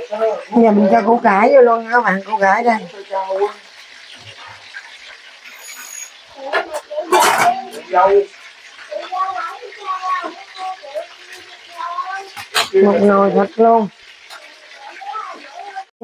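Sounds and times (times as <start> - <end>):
indistinct high-pitched voices: 6.1 - 15.9.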